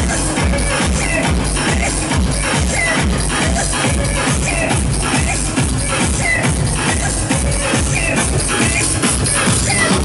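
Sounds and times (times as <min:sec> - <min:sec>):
steady kick drum beat: 0:00.0 - 0:10.0
techno music through sound system: 0:00.0 - 0:10.0.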